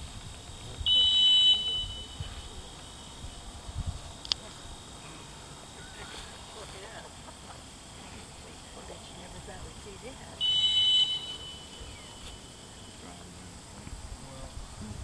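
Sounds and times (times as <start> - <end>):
dog whistle blast: 10.4 - 12.4.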